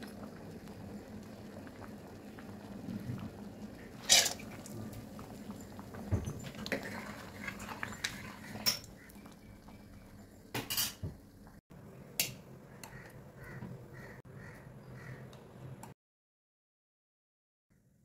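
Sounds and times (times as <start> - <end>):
thick pudding bubbling in a pot: 0.0 - 10.5
low steady simmer: 0.0 - 16.0.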